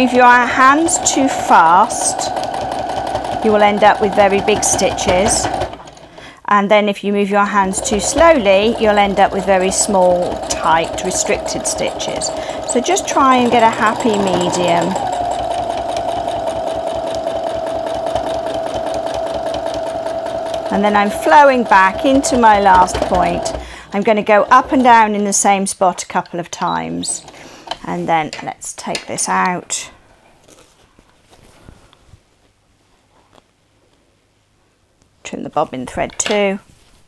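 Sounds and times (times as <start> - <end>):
sewing machine stitching: 0.0 - 6.3, 7.5 - 25.4
quilted fabric rustling: 36.7 - 37.0.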